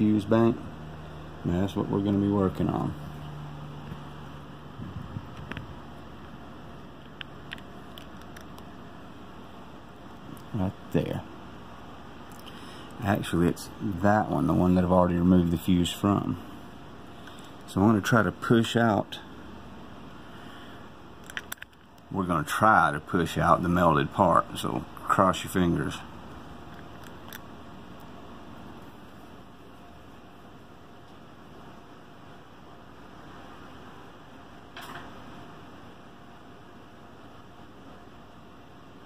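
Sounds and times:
fan running: 0.0 - 39.0
low room hum: 0.0 - 39.0.

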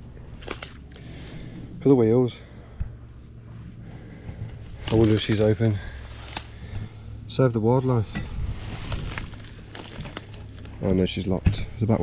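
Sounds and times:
rustling handling noise: 3.2 - 6.8, 7.8 - 11.4.

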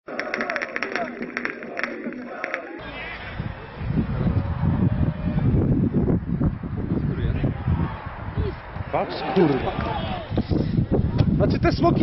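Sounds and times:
firecrackers cracking: 0.1 - 2.8
crowd shouting: 0.1 - 5.5, 7.3 - 10.4.

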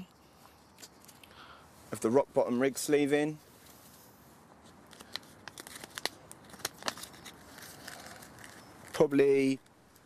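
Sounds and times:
plastic packet crinkling: 4.9 - 9.1.

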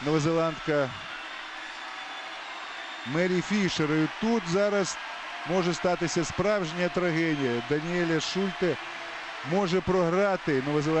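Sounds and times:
crowd noise in swimming arena: 0.0 - 11.0.

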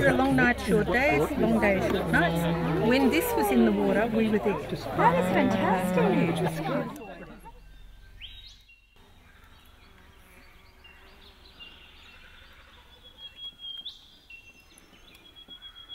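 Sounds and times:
birds whistling: 7.0 - 9.0, 12.9 - 15.9.

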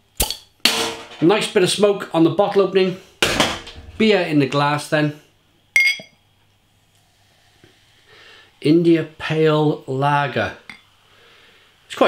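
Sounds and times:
bottle clinking against glass: 5.8 - 6.2.

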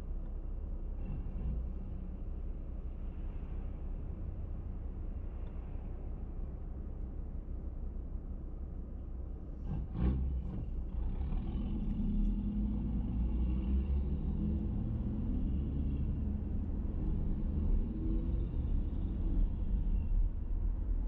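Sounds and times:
car engine and road noise: 0.0 - 21.0.

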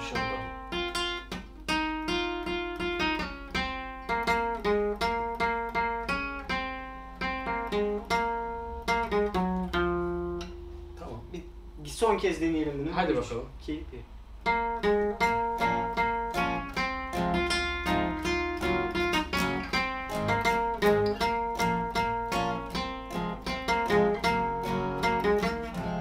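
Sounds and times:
two acoustic guitars playing: 0.0 - 11.8, 14.4 - 26.0.

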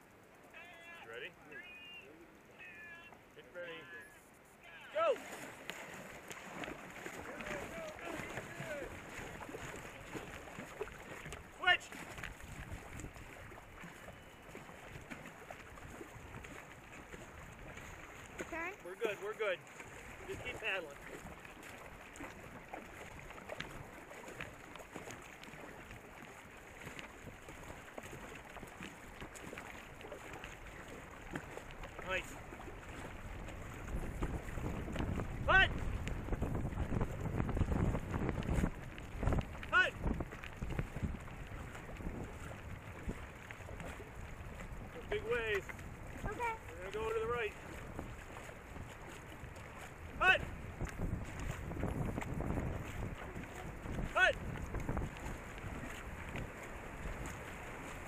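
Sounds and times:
water rushing against hull: 0.0 - 58.0
wind buffeting microphone: 6.4 - 18.8, 19.9 - 58.0.

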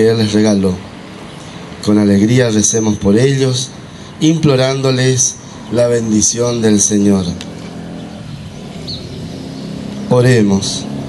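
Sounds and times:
bird chirp: 0.0 - 11.0
car driving past: 7.4 - 11.0.

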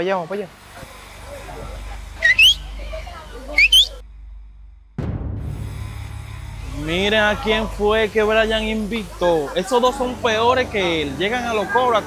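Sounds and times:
low steady rumble: 0.5 - 12.0
rising whistled notes: 1.2 - 4.0.

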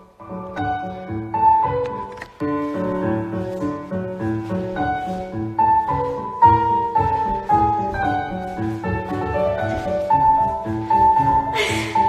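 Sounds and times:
lively piano music: 0.0 - 12.0.

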